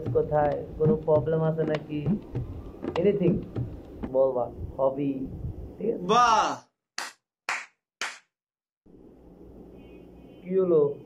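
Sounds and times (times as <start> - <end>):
hand claps: 7.0 - 8.3.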